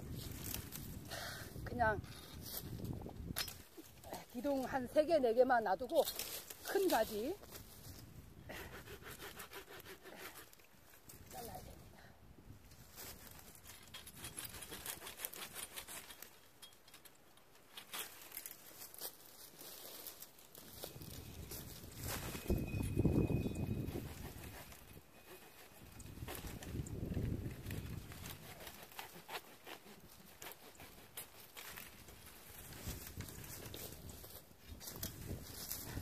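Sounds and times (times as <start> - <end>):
wind rumbling on microphone: 0.0 - 5.3, 6.6 - 9.4, 20.6 - 28.8, 31.8 - 36.0
dry branches clicking and crackling: 5.7 - 7.8, 12.9 - 22.6, 24.2 - 36.0.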